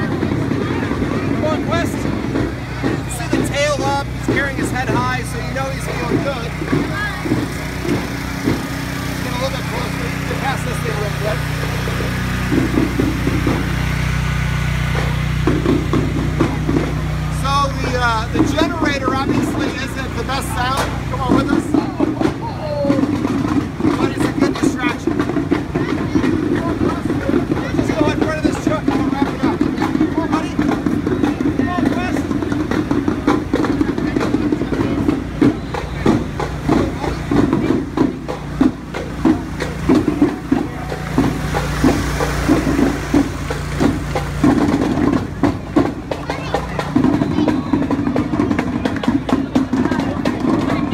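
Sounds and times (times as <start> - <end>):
generator humming: 0.0 - 50.9
street crowd chatter: 0.0 - 50.9
sharp knocks and taps: 14.8 - 50.9.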